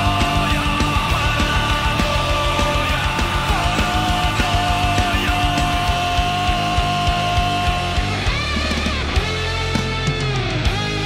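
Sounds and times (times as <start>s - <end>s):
fast kick drum strokes: 0.0s - 8.4s.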